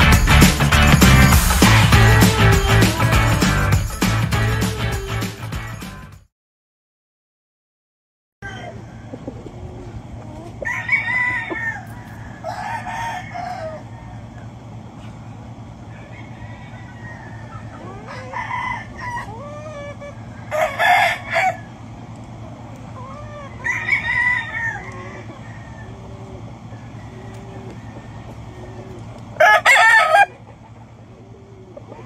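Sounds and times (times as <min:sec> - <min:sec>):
roosters crowing: 0:08.4 - 0:32.0
steady low hum: 0:13.3 - 0:29.4.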